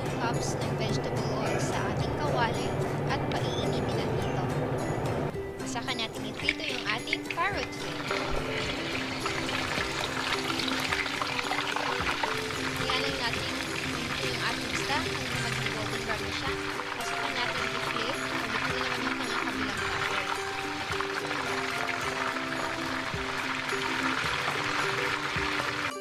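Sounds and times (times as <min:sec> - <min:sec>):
background music with held notes: 0:00.0 - 0:26.0
fish deep-frying in hot oil: 0:06.4 - 0:26.0.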